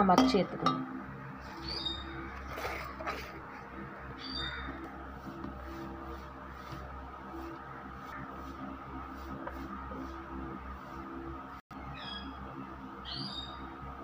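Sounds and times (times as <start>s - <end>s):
steady low hum: 0.0s - 14.0s
bird chirping: 1.4s - 2.4s, 4.1s - 4.9s, 11.8s - 12.4s, 13.0s - 13.7s.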